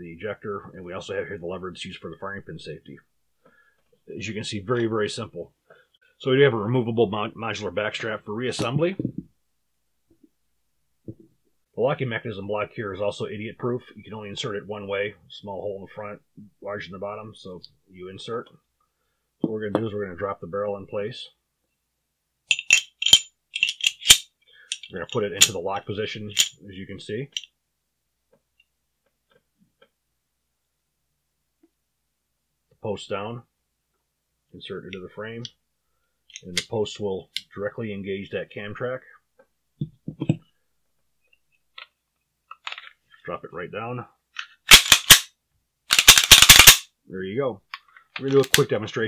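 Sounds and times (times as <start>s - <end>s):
metal parts clinking: 22.5s - 25.5s, 26.3s - 26.5s, 44.7s - 45.3s, 45.9s - 46.8s
pistol slide metal clacks: 22.5s - 25.6s, 26.3s - 26.5s, 44.4s - 45.3s, 45.9s - 46.9s.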